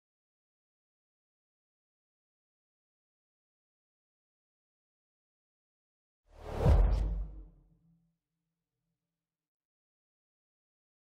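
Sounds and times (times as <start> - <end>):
whoosh with deep boom: 6.4 - 7.7.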